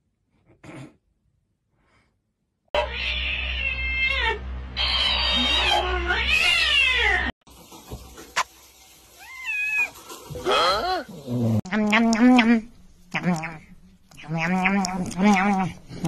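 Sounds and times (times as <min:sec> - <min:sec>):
cat meowing and yowling: 0:02.8 - 0:07.3.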